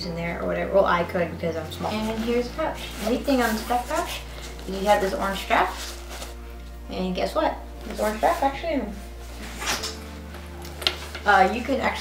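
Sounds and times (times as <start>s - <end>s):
soft background music: 0.0s - 12.0s
fabric pouch rustling: 1.6s - 6.8s, 7.7s - 12.0s.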